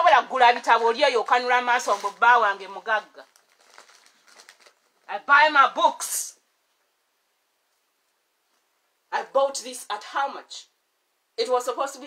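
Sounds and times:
rustling of rummaging by hand: 0:00.4 - 0:05.1.

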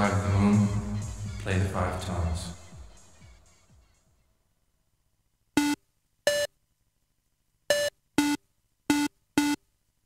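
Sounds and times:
buzzy synthesizer beep: 0:05.6 - 0:06.5, 0:07.7 - 0:09.6.

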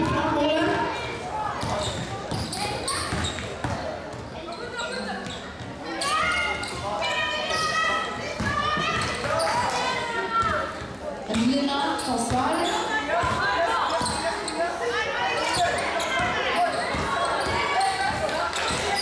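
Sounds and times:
basketball bouncing on court: 0:01.6 - 0:04.3, 0:08.2 - 0:09.5, 0:10.3 - 0:12.6, 0:16.2 - 0:18.9.

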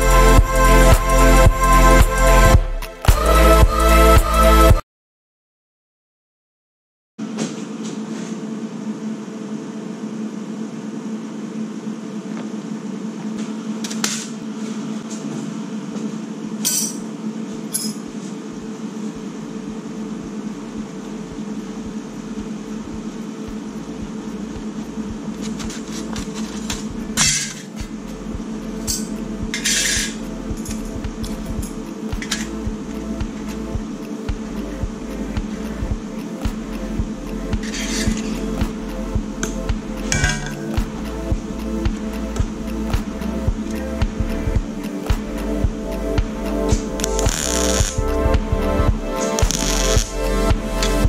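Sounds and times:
steady hum: 0:00.0 - 0:04.8, 0:07.2 - 0:51.0.

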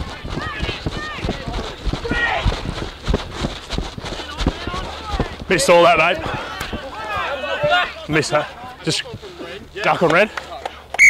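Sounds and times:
distant players shouting: 0:00.0 - 0:02.9, 0:04.1 - 0:11.0
footfalls running on grass: 0:00.0 - 0:10.8.

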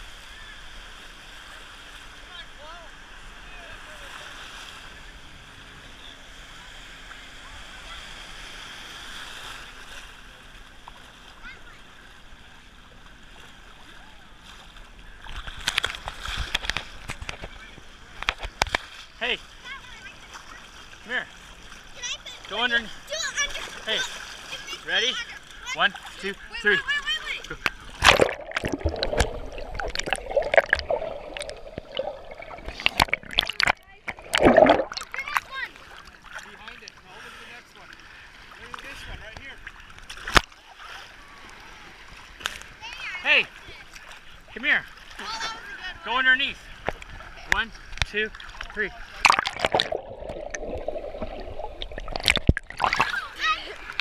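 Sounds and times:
seawater splashing: 0:00.0 - 0:54.0
underwater gurgling and bubbling: 0:27.6 - 0:35.4, 0:49.2 - 0:53.1.

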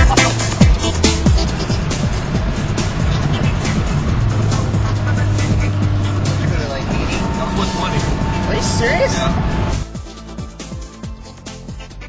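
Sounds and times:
music with a beat: 0:00.0 - 0:09.0, 0:09.7 - 0:12.0
road noise: 0:00.0 - 0:11.9
car engine drone: 0:00.0 - 0:12.0.

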